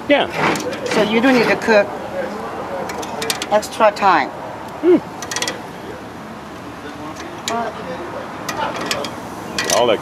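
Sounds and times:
metal tongs clicking on grate: 0:08.5 - 0:09.9.

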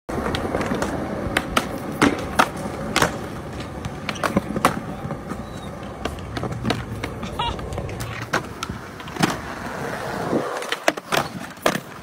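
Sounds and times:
skateboard clacking on ground: 0:00.1 - 0:12.0
skateboard wheels rolling on concrete: 0:00.1 - 0:12.0.

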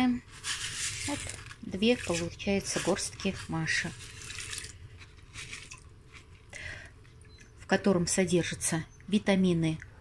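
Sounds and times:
beans rustling: 0:00.0 - 0:06.8.

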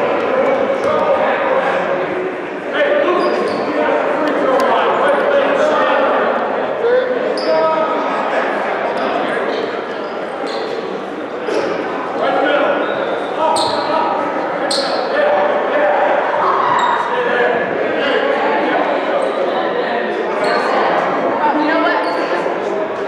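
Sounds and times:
many voices talking: 0:00.0 - 0:23.0.

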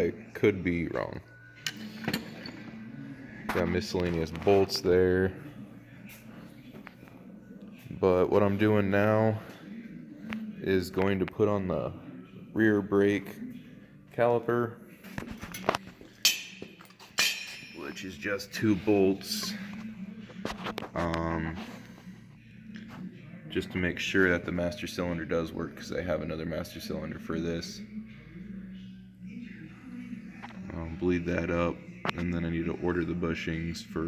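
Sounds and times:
metal tools clinking and knocking: 0:15.4 - 0:18.4
ringing metal clank: 0:16.2 - 0:18.3.

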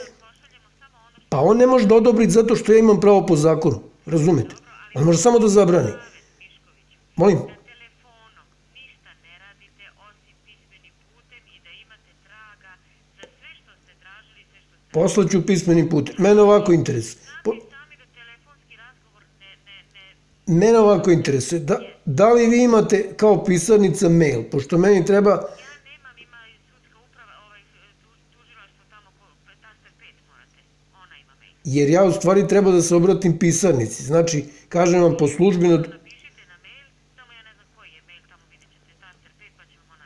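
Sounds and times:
person talking over telephone: 0:00.0 - 0:40.0
steady low hum: 0:00.0 - 0:40.0.

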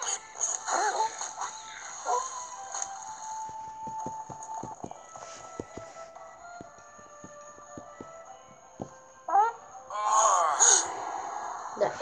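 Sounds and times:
quiet background music: 0:00.0 - 0:12.0
pig hooves running: 0:03.4 - 0:09.0.

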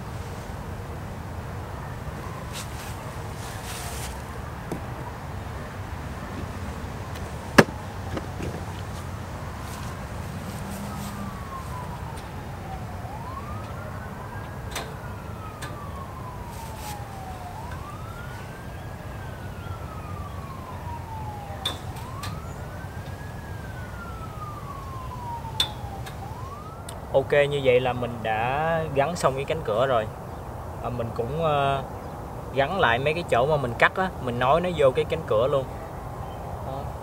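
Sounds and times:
steady low rumble: 0:00.0 - 0:27.1
emergency siren wailing: 0:00.0 - 0:37.0
sharp knocks: 0:07.6 - 0:08.8.

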